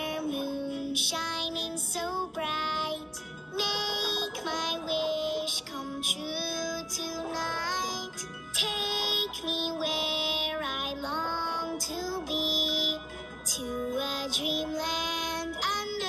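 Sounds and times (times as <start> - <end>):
girl singing a lullaby: 0.0 - 16.0
soft backing music: 0.0 - 16.0.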